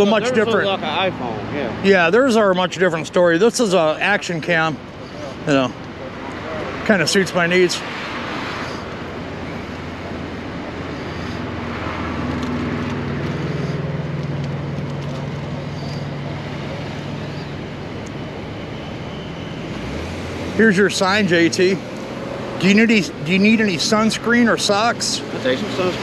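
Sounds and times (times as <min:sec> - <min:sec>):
road traffic passing: 0:00.0 - 0:26.0
vehicle engine hum: 0:00.0 - 0:26.0.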